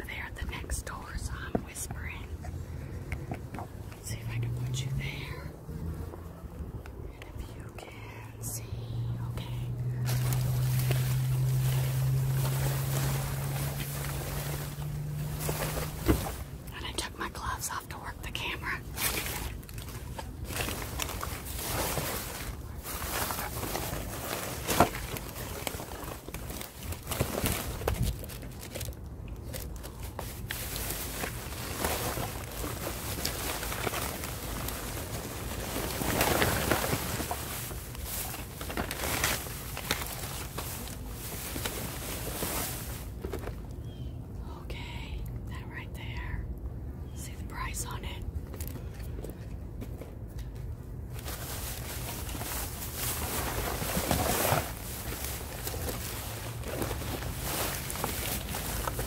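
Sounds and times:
steady low hum: 0:00.0 - 0:59.0
plastic bags rustling and crinkling: 0:07.7 - 0:44.0, 0:50.6 - 0:59.0.

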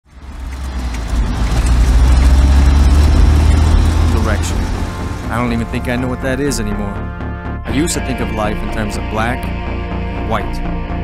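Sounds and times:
deep bass drone: 0:00.0 - 0:11.0.

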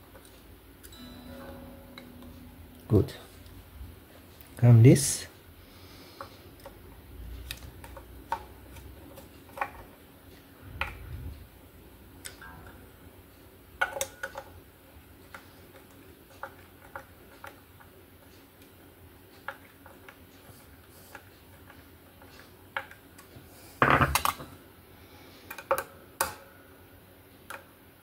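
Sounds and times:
fingers pressing guitar strings: 0:00.9 - 0:04.0.

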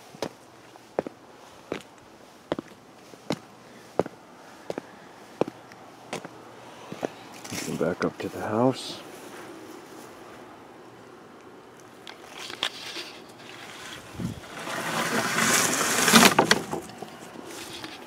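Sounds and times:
rushing rustle near microphone: 0:12.3 - 0:18.0.

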